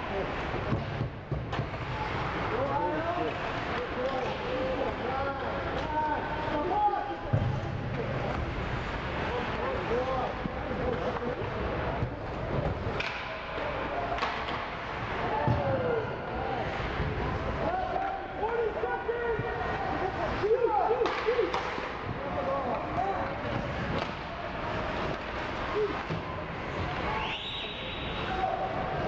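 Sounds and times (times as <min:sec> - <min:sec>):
arena noise: 0:00.0 - 0:29.0
hockey sticks and puck clacking: 0:00.2 - 0:15.9, 0:16.7 - 0:29.0.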